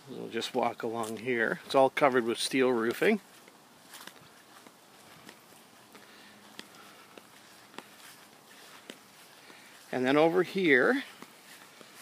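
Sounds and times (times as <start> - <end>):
footsteps on grass: 0.2 - 12.0.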